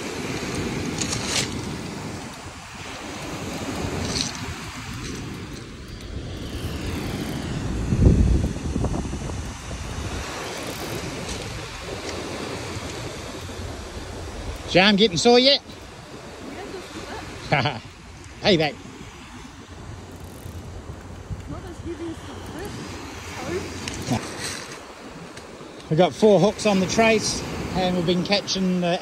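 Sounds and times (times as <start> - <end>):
wind buffeting microphone: 0.0 - 28.5
surf on pebble beach: 0.0 - 29.0.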